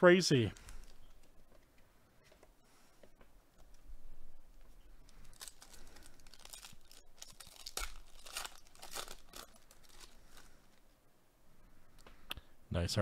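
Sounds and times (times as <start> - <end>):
wrapper tearing and crinkling: 5.0 - 10.6.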